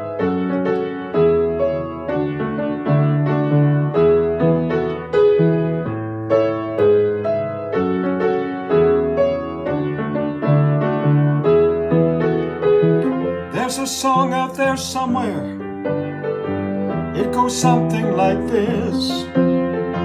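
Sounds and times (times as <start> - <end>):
upright piano chords: 0.0 - 20.0.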